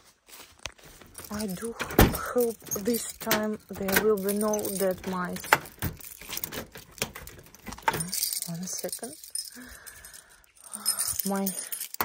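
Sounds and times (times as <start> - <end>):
keys jingling at a lock: 1.0 - 12.0.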